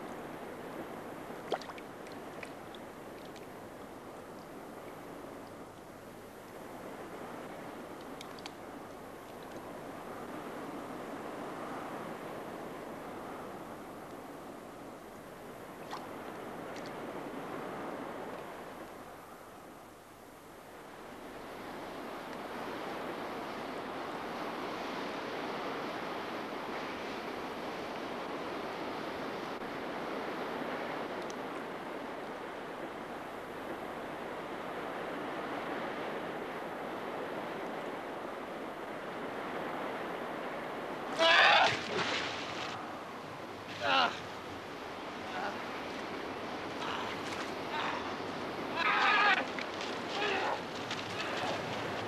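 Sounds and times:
sea surf washing over shore: 0.0s - 52.0s.

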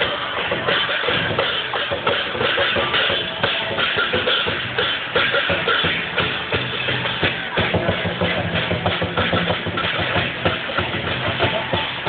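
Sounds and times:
drums and cymbals beating: 0.0s - 12.0s.

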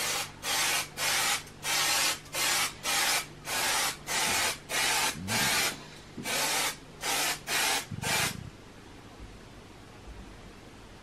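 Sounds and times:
aerosol spray can hissing: 0.0s - 8.4s.

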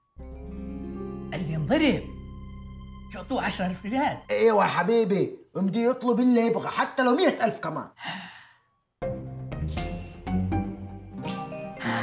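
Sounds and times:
background music: 0.0s - 5.6s, 9.0s - 12.0s.

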